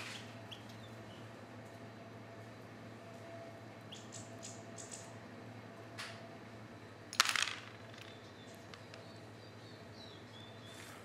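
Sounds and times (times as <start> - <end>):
dice clattering on wooden board: 7.1 - 9.1.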